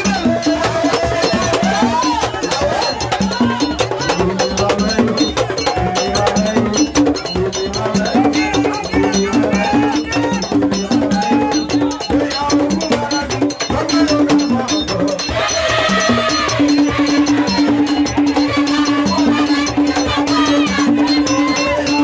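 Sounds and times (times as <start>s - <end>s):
fast percussion with bell-like strokes: 0.0s - 22.0s
voices singing together: 0.0s - 22.0s.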